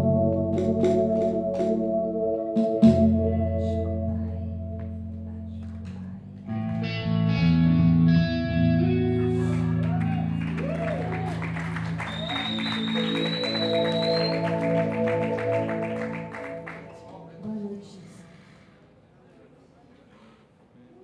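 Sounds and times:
electric guitar: 0.0s - 17.4s
keyboard chords: 0.0s - 17.8s.

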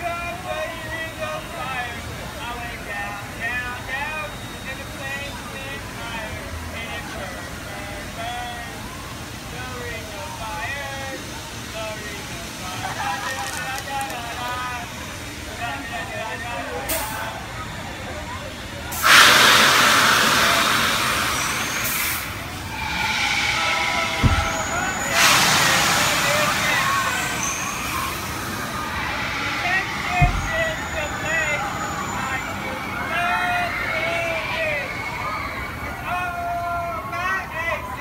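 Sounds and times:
rush of hissing air: 18.9s - 33.5s
riders screaming: 22.8s - 36.0s.

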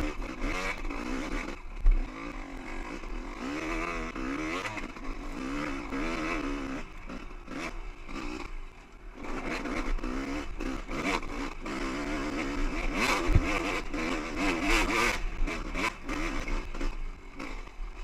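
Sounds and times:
dirt bike engine revving: 0.0s - 18.0s.

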